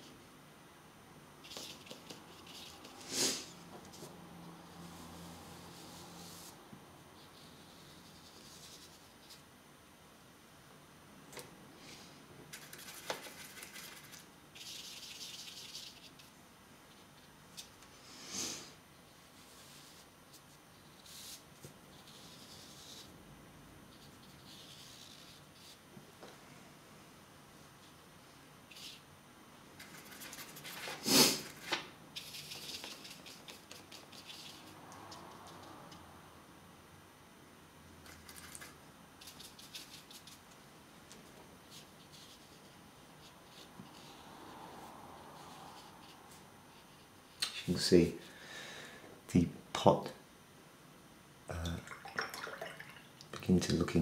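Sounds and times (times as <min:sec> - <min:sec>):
brush scratching on palette: 0:01.4 - 0:09.5, 0:12.5 - 0:17.7, 0:19.0 - 0:23.2, 0:23.9 - 0:25.9, 0:29.8 - 0:36.1, 0:38.0 - 0:40.6, 0:41.6 - 0:47.4
brush and paper rustles: 0:12.5 - 0:17.8, 0:29.8 - 0:35.8.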